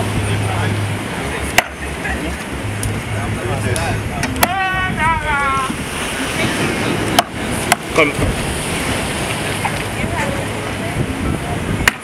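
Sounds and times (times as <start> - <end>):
surf: 0.0 - 12.0
wind: 0.0 - 12.0.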